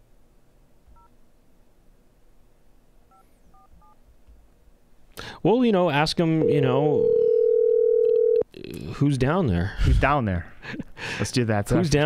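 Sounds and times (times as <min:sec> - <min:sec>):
telephone keypad touch tones: 0:07.1 - 0:08.4.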